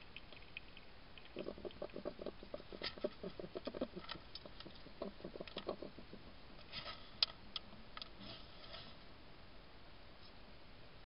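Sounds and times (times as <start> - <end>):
hedgehog eating: 0.0 - 8.1.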